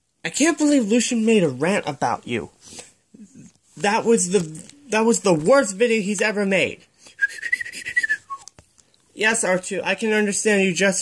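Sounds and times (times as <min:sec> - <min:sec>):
person whistling robot beeps: 0:07.2 - 0:08.5.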